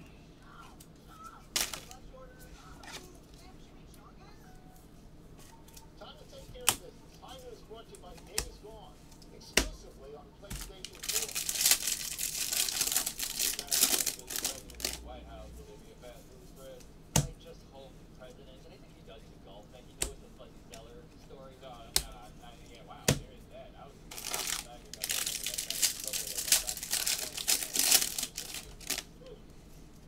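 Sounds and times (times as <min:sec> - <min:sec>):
cards and plastic clicking: 0:10.5 - 0:15.0, 0:24.1 - 0:29.1
wrapper tearing open crinkling: 0:10.6 - 0:15.0, 0:24.1 - 0:29.1.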